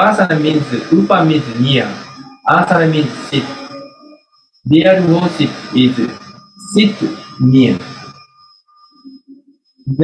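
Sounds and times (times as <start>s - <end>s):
man talking: 0.0s - 3.8s, 4.7s - 8.0s
faint high-pitched whine: 0.0s - 10.0s.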